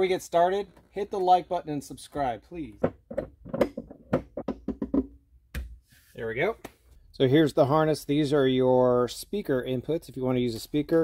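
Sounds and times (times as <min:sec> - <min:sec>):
knocks and clicks on plastic: 0:02.8 - 0:05.2.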